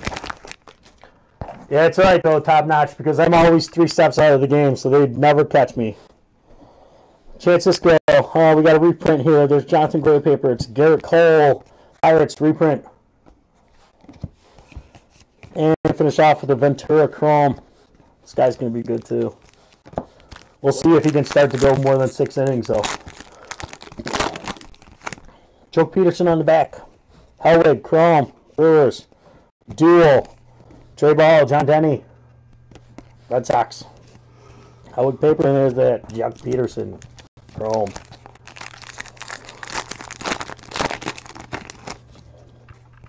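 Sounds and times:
foil wrapper ripping: 0.0 - 1.1, 18.4 - 25.3, 36.1 - 42.2
foil wrapper crinkling: 0.0 - 1.3, 18.3 - 25.4, 35.4 - 43.0.

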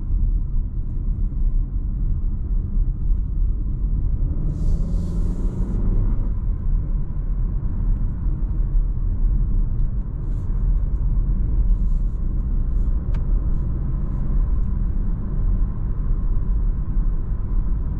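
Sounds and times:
car engine and tyre rumble: 0.0 - 17.9.

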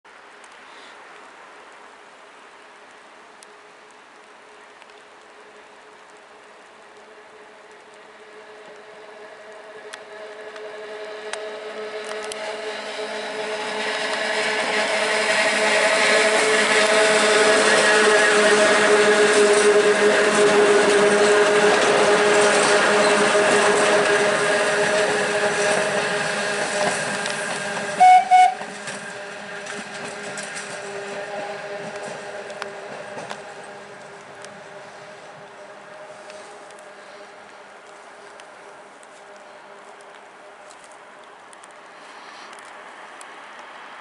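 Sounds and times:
train wheels rumbling on rails: 1.2 - 44.0
electric train motor whine: 7.8 - 38.3.

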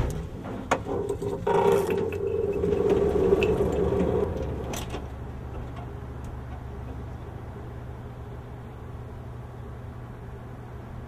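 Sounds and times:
fluorescent light hum: 0.0 - 11.0.

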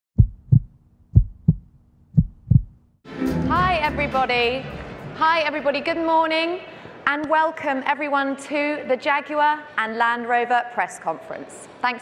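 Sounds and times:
heartbeat-like deep double thumps: 0.2 - 2.9
woman speaking: 3.5 - 12.0.

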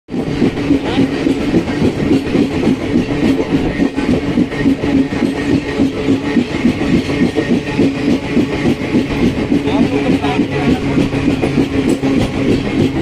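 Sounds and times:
train wheels rumbling on rails: 0.1 - 13.0.

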